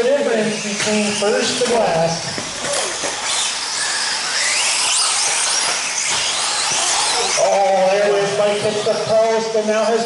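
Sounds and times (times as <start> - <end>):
electric motors of toy cars whining: 0.0 - 10.0.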